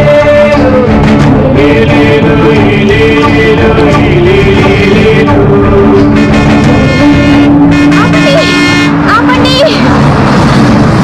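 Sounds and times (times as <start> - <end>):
bus approaching: 0.0 - 11.0.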